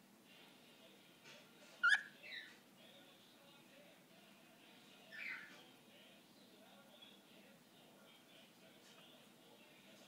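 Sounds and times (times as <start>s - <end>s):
cockatiel chirping: 1.8s - 2.5s.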